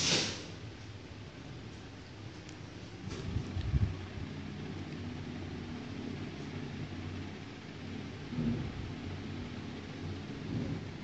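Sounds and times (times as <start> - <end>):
low room rumble and hum: 0.0 - 11.0.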